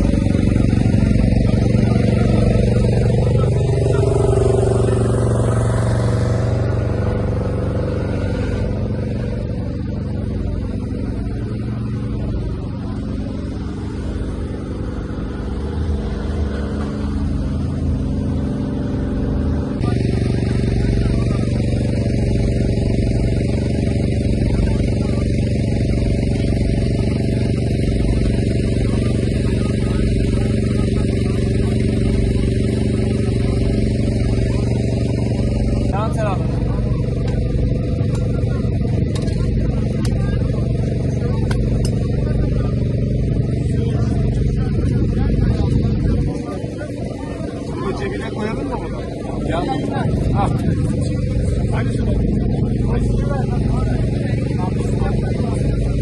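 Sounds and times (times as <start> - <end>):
engine-like hum: 0.0 - 56.0
indistinct voices: 0.0 - 56.0.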